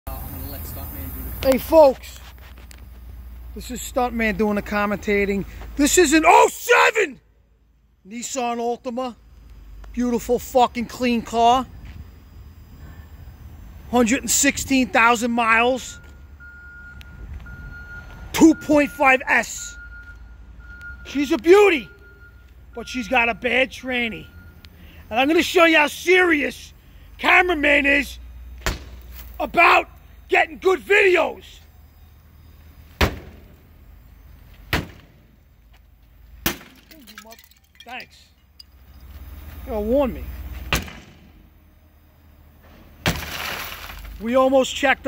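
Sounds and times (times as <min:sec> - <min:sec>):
electronic warning beeps: 0:15.1 - 0:25.5
glass breaking and tinkling: 0:36.7 - 0:38.8
crowbar striking car: 0:40.7 - 0:41.3.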